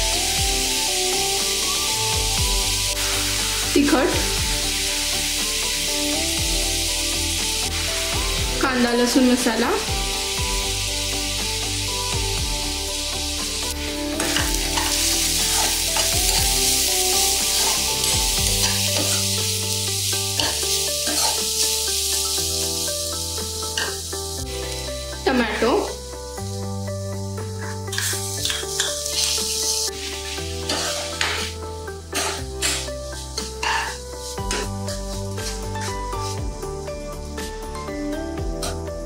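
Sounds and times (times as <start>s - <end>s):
onions frying in oil: 0.0s - 38.8s
metal spatula scraping pan: 13.7s - 16.5s, 17.2s - 19.4s, 20.4s - 21.7s, 23.8s - 24.0s, 27.6s - 34.8s, 35.4s - 36.4s.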